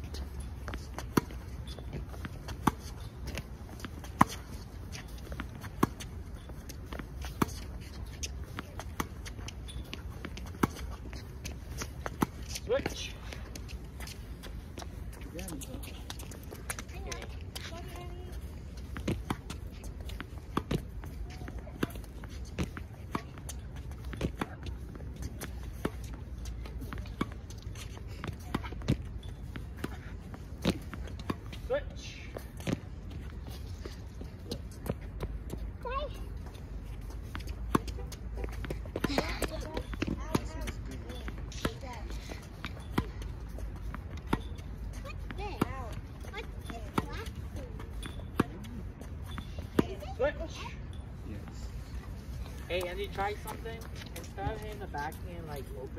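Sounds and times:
balls bouncing on hard court: 0:00.0 - 0:50.6, 0:51.4 - 0:55.9
tennis balls struck with rackets: 0:00.1 - 0:14.9, 0:37.2 - 0:50.4
voices: 0:15.1 - 0:29.1.

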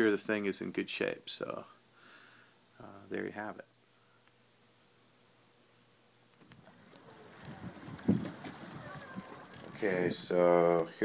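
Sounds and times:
faint irregular rustling: 0:06.2 - 0:11.0.

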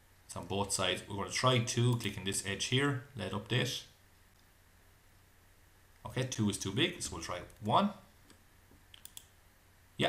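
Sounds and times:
computer mouse clicks: 0:07.4 - 0:09.4.

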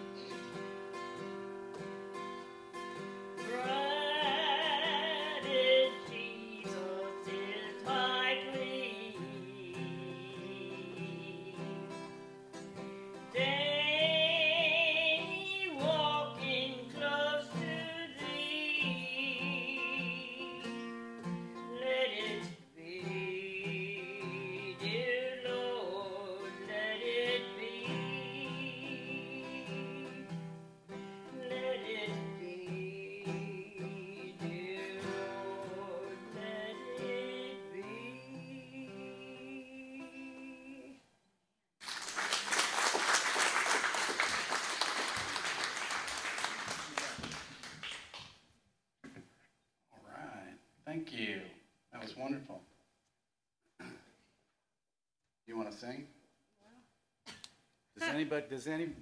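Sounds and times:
acoustic guitar chords: 0:00.0 - 0:41.0
woman singing with vibrato: 0:03.4 - 0:12.2, 0:13.3 - 0:20.8, 0:21.6 - 0:30.6, 0:31.2 - 0:41.0.

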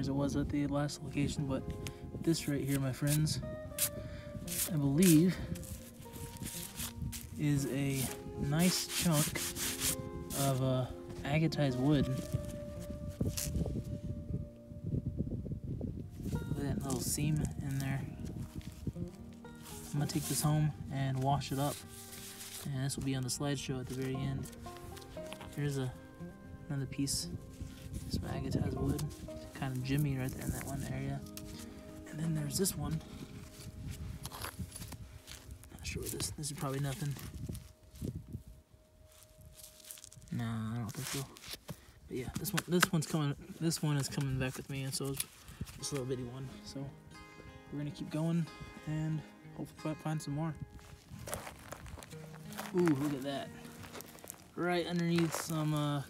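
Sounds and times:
faint background music: 0:00.0 - 0:56.0
rock scuffing in loose dirt: 0:01.2 - 0:13.7, 0:16.2 - 0:26.0, 0:26.9 - 0:38.4, 0:39.1 - 0:46.9, 0:50.0 - 0:56.0
sharp scrape: 0:03.8 - 0:10.6.

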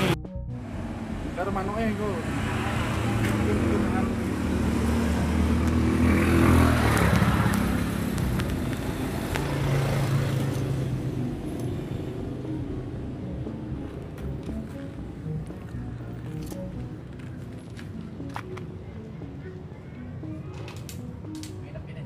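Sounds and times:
vehicle passing close by: 0:00.0 - 0:11.4
background traffic: 0:00.0 - 0:22.0.

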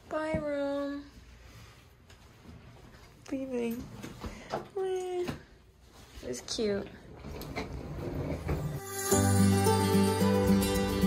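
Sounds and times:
suitcase wheels rumbling: 0:07.2 - 0:08.8
music: 0:08.7 - 0:11.0.

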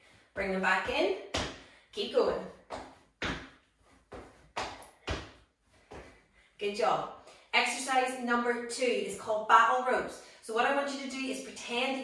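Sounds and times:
shoes thudding on tiled floor: 0:02.6 - 0:06.2.

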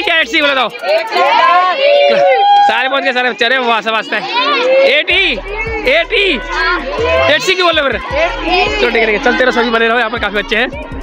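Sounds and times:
children chattering and calling out: 0:00.0 - 0:11.0
background music with low bass: 0:05.0 - 0:11.0.

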